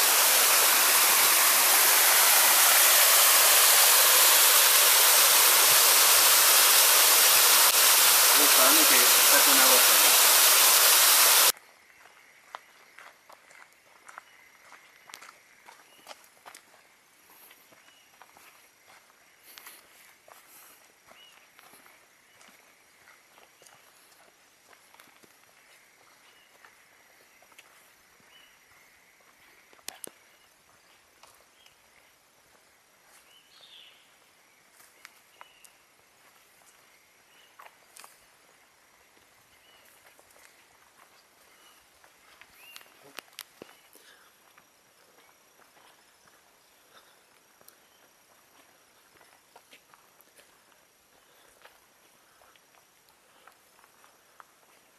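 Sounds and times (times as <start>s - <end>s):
waterfall rushing: 0.0s - 11.5s
footsteps on dirt trail: 11.5s - 33.8s, 34.7s - 54.9s.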